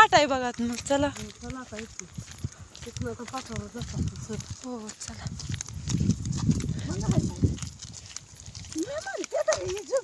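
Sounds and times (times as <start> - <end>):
footsteps on dirt track: 0.0 - 10.0
person's voice: 2.8 - 5.3, 6.7 - 7.6.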